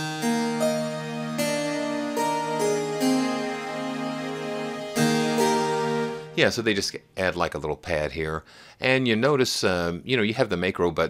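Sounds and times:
harpsichord chords: 0:00.0 - 0:06.5
soft string pad: 0:00.2 - 0:06.4.

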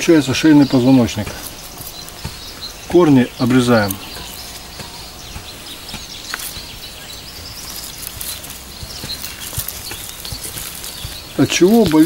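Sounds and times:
faint steady background noise: 0:00.0 - 0:12.0
scissors snipping roots: 0:00.6 - 0:12.0.

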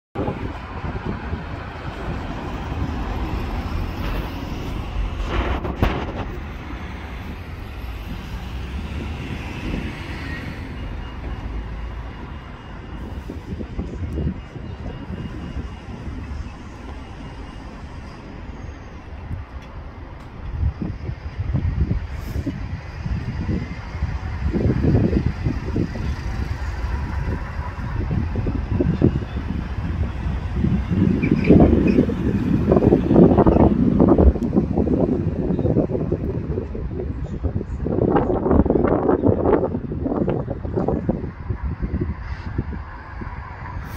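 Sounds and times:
wind buffeting microphone: 0:00.2 - 0:43.9.

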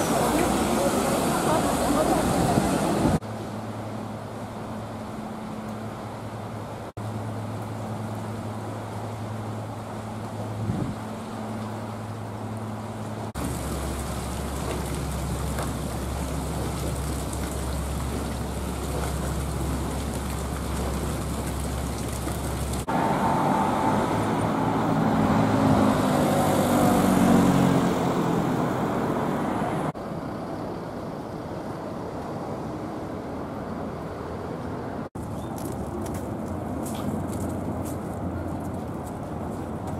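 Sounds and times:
city street traffic: 0:00.0 - 0:39.9
water churning: 0:07.0 - 0:29.4
motor vehicle passing: 0:12.6 - 0:30.0.

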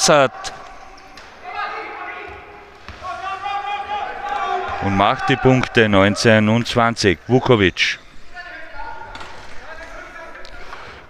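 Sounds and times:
shouted calls echoing in hall: 0:00.0 - 0:11.0.

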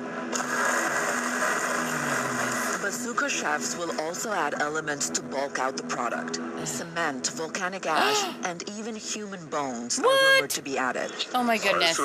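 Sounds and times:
electric blender running: 0:00.3 - 0:03.2.

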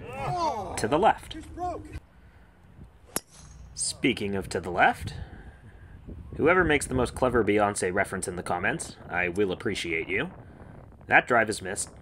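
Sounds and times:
golf club striking ball: 0:03.0 - 0:03.8.

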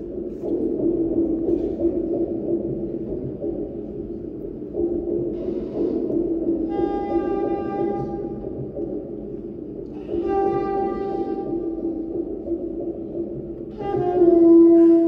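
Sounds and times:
saxophone playing long notes: 0:13.7 - 0:15.0.

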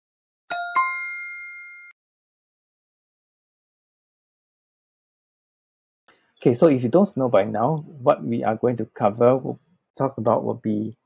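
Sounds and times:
two-note bell chime: 0:00.5 - 0:02.0.

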